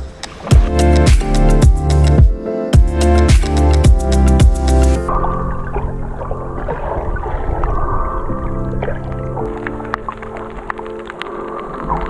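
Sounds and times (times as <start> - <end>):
muffled background music: 4.9 - 12.0.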